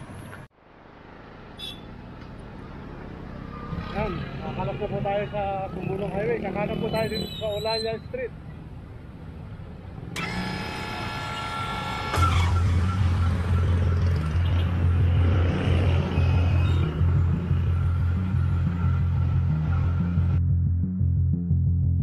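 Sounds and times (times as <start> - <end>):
motorcycle tricycle traffic: 0.0 - 20.3.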